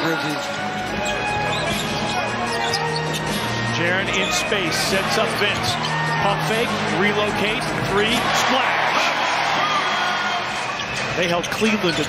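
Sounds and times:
arena music: 0.0s - 12.0s.

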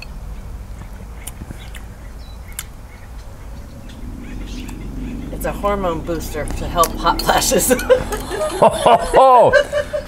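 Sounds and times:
faint bird chirps: 0.0s - 5.6s
steady low rumble: 0.0s - 10.0s.

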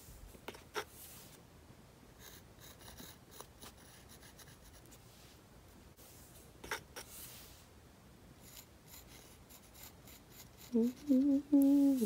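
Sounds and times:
paintbrush scratchy strokes: 6.0s - 7.7s, 8.4s - 12.0s.

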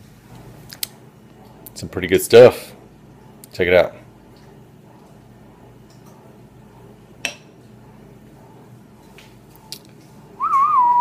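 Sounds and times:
man whistling: 10.4s - 11.0s.

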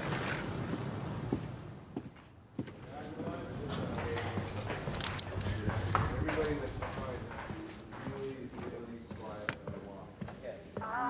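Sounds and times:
hard-soled footsteps clicking: 0.0s - 11.0s
indistinct voices talking: 2.8s - 11.0s.

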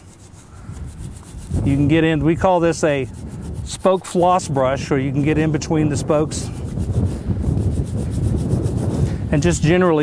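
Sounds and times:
brush scrubbing wheel spokes: 0.0s - 10.0s.

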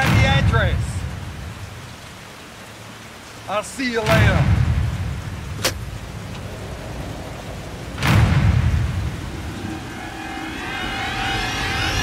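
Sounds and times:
heavy rain on street: 0.0s - 12.0s
deep thunder-like rumble: 4.1s - 12.0s
rising wavering whine: 9.4s - 12.0s.

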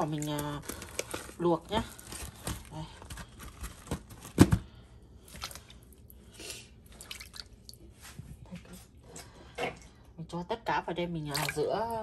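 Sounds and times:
water splashing and dripping: 6.9s - 7.8s, 11.3s - 11.8s.

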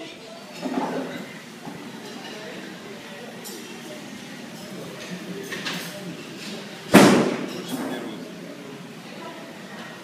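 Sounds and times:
loud thump with ringing: 6.9s - 7.6s.

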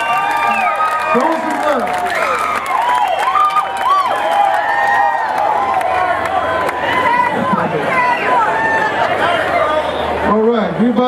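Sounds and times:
crowd cheering and talking: 0.0s - 11.0s.

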